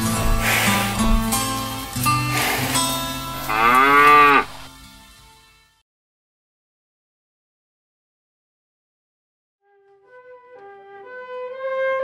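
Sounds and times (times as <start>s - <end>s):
water buffalo lowing: 0.0s - 4.7s.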